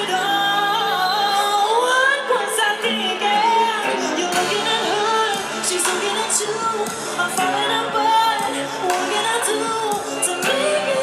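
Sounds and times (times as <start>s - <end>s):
woman singing: 0.0s - 11.0s.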